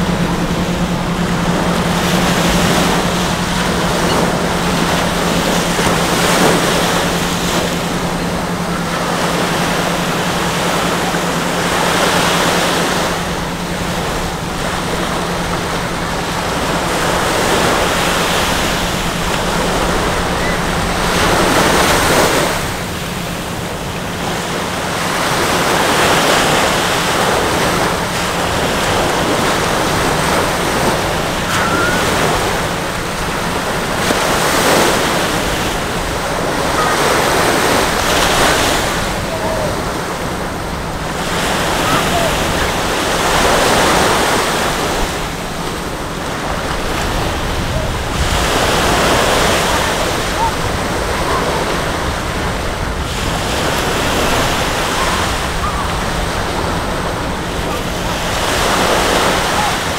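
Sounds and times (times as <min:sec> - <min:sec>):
steady low hum: 0:00.0 - 0:58.9
small waves breaking on beach: 0:00.0 - 0:59.9.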